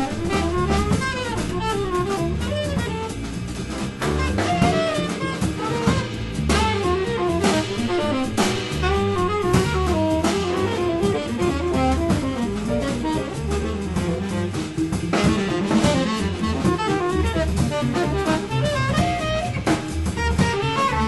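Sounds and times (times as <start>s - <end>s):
drum kit: 0.0s - 21.0s
tenor saxophone melody: 0.0s - 21.0s
upright bass: 0.0s - 21.0s.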